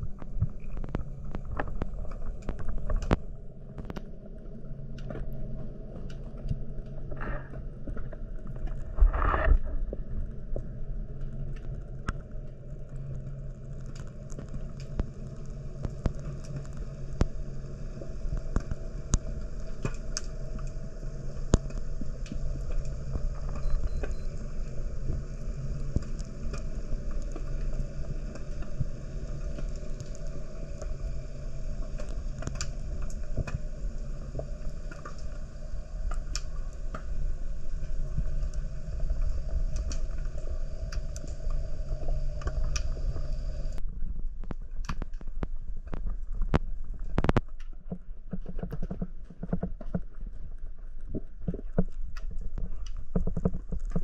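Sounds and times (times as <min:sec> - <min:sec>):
low underwater rumble: 0:00.0 - 0:54.0
sharp clicks and crackles: 0:00.0 - 0:54.0.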